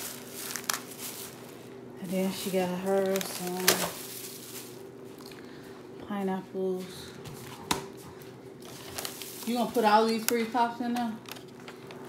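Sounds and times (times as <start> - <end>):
cardboard pack being handled: 0.0 - 1.6
steady low hum: 0.0 - 12.0.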